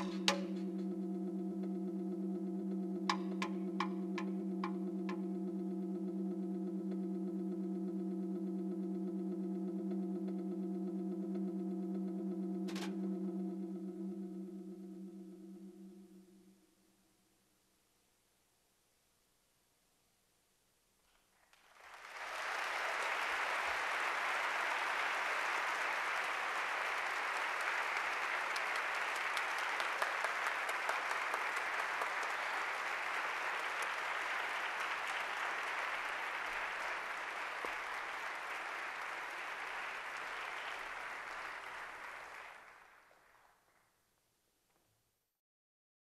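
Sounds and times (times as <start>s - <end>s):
audience applauding: 21.5s - 43.9s.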